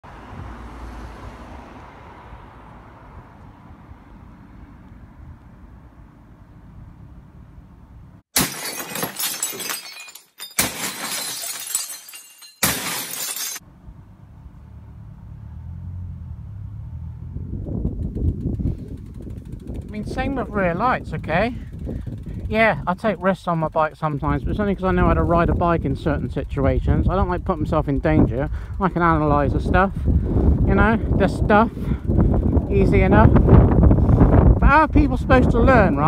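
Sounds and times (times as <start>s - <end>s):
plates smashing: 8.4s - 13.6s.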